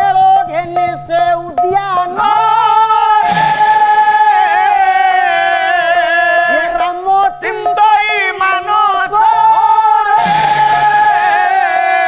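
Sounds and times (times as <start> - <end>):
hand cymbals clashing: 3.2 - 4.6, 10.2 - 12.0
person singing a held note: 3.2 - 4.7, 10.2 - 11.8.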